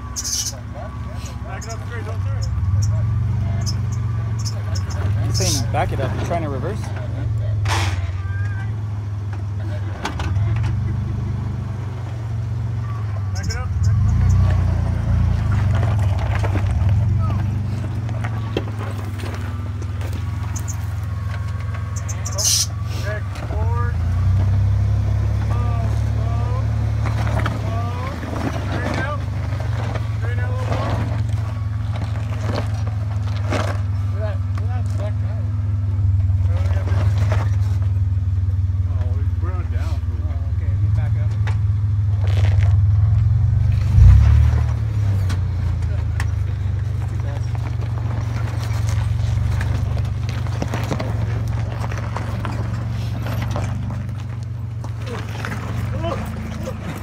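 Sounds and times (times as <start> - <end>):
truck engine running low: 0.0 - 57.0.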